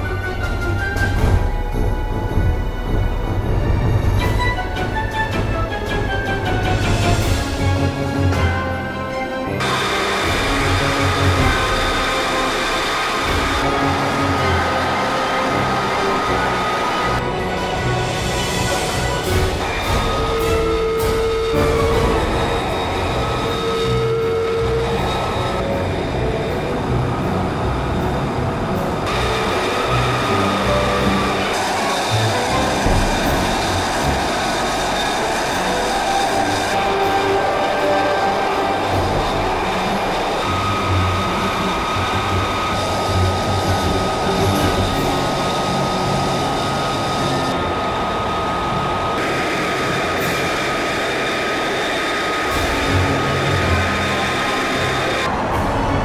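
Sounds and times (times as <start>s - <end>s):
jet engine idling: 0.0s - 56.0s.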